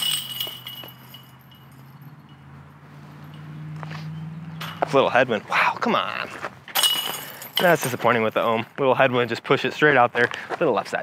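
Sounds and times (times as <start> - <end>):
chains jangling as disc strikes: 0.0 - 2.3, 4.6 - 4.9, 6.7 - 8.6.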